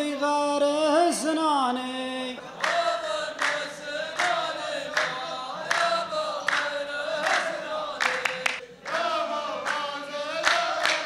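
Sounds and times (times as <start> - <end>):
men chanting in unison: 0.0 - 11.0
sharp hand claps: 2.6 - 11.0.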